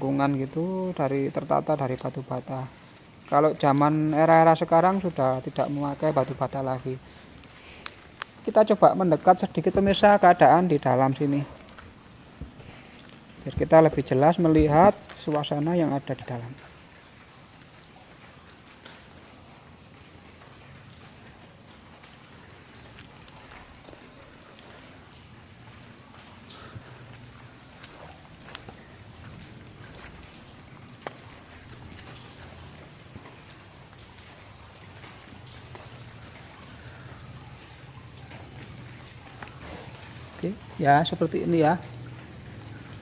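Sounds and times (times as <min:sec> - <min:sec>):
faint water noise: 0:00.0 - 0:43.0.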